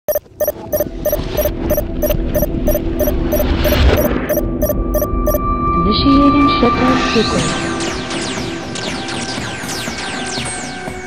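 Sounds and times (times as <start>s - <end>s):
regular clicking pulse: 0.0s - 5.4s
heavy electronic hum: 0.1s - 5.4s
steady high tone: 0.1s - 5.6s.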